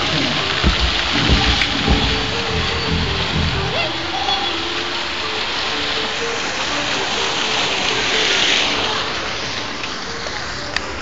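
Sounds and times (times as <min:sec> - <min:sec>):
fountain water splashing: 0:00.0 - 0:11.0.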